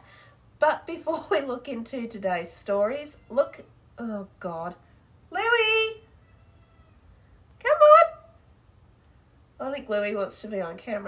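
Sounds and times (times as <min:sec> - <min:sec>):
cat meowing: 0:06.2 - 0:07.1.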